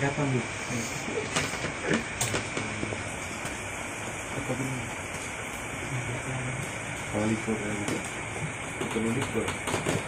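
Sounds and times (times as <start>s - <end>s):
steady hiss: 0.0s - 9.6s.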